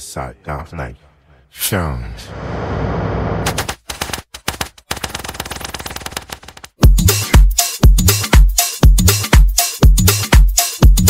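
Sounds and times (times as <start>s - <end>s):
rapid-fire sharp clicks: 3.4s - 6.8s.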